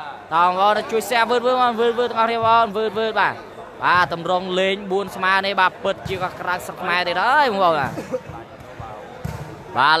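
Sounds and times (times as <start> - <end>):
volleyball dull thuds: 7.8 - 9.6.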